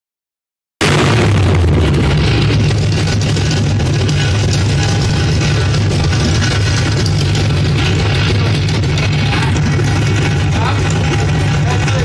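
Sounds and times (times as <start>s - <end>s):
loud engine running: 0.8s - 12.0s.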